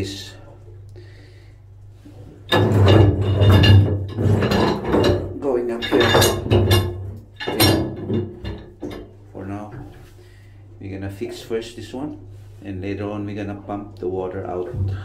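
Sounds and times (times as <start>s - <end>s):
man talking: 0.0s - 0.6s, 5.4s - 6.2s, 9.3s - 10.0s, 10.8s - 15.0s
steady low hum: 0.0s - 15.0s.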